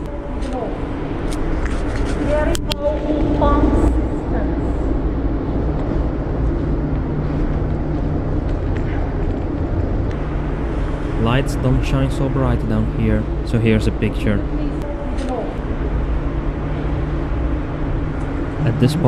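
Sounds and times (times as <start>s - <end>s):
low mechanical hum: 0.0s - 19.0s
indistinct voices: 11.2s - 15.7s, 18.5s - 19.0s.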